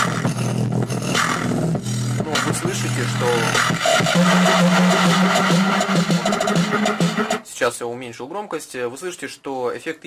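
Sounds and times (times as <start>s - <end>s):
distorted music from loudspeaker: 0.0s - 7.4s.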